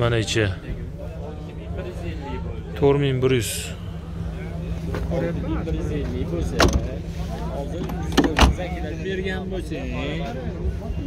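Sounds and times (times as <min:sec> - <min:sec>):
men's voices: 0:00.0 - 0:11.0
car door shutting: 0:06.4 - 0:07.0, 0:07.8 - 0:08.7.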